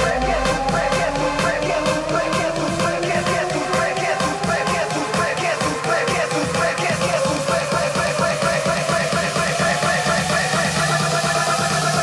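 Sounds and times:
electronic dance music build-up: 0.0 - 12.0.

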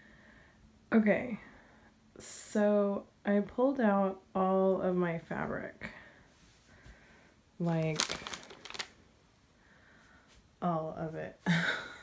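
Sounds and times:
fabric and plastic bag rustling: 7.6 - 9.0.

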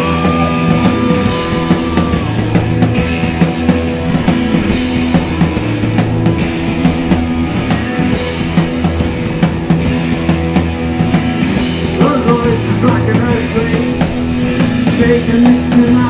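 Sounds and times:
drum kit beat: 0.0 - 16.0
electric guitars: 0.0 - 16.0.

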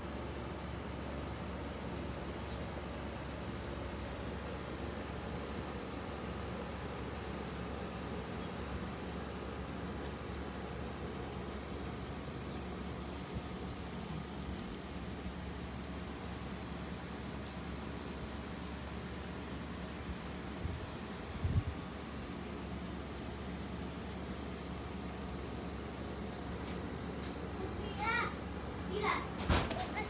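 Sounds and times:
faint steady hum: 0.0 - 30.0
outdoor rumble and hiss: 0.0 - 30.0.

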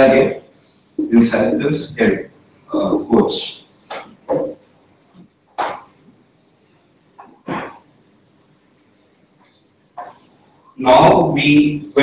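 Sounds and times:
person coughing: 7.4 - 7.8.

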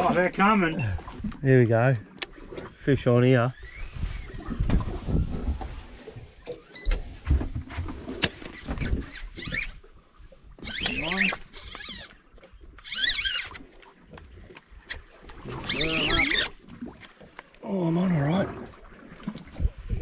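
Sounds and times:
fabric rubbing on microphone: 3.7 - 6.1.

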